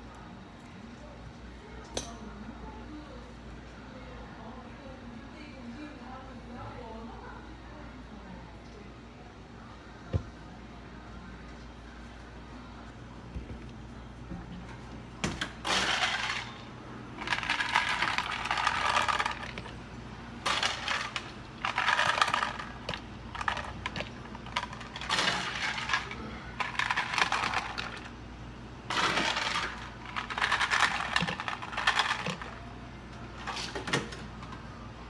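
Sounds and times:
ice cubes clattering into plastic cups: 15.6 - 16.6, 17.2 - 19.7, 20.4 - 28.1, 28.9 - 32.6.

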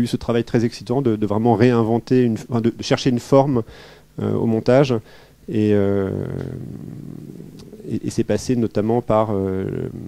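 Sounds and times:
man speaking hesitantly: 0.0 - 10.0.

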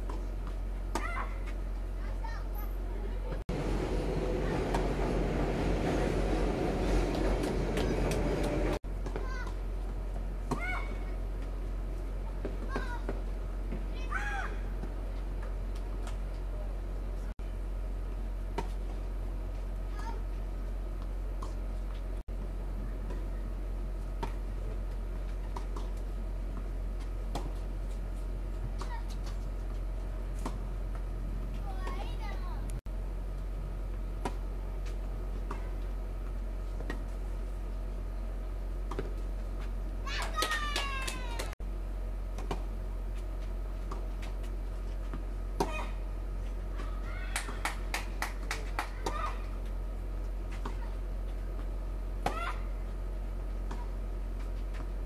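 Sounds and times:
racket hitting tennis ball: 46.8 - 49.5, 50.5 - 51.0, 52.2 - 52.8.

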